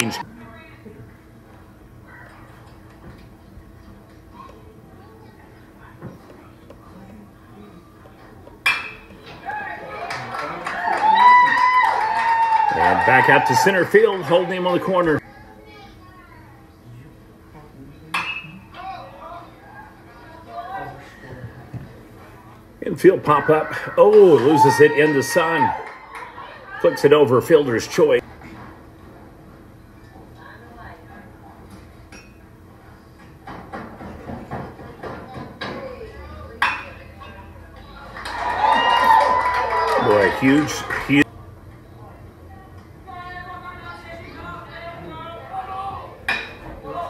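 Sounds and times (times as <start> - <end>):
crowd cheering and shouting: 0.0 - 0.2, 9.2 - 15.2, 23.1 - 27.3, 37.8 - 41.3
faint crowd voices: 0.0 - 11.9, 12.6 - 28.2, 29.8 - 47.0.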